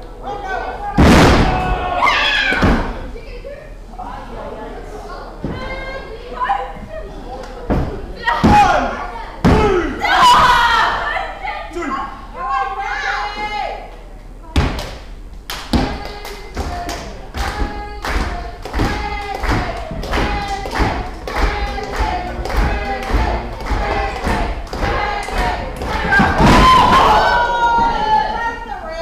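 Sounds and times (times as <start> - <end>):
voices shouting: 0.3 - 3.0, 8.2 - 13.8, 18.9 - 29.0.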